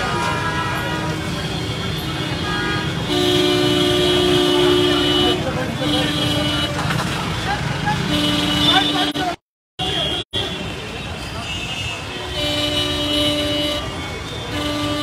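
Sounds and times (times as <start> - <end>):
crowd chatter: 0.0 - 2.9, 3.8 - 15.0
street traffic: 0.0 - 15.0
vehicle horn blasts: 2.2 - 6.8, 8.0 - 10.5, 11.5 - 15.0.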